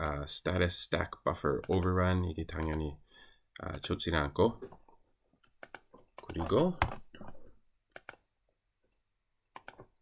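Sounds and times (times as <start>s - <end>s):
man speaking: 0.0s - 3.0s, 3.6s - 4.7s, 6.2s - 7.1s.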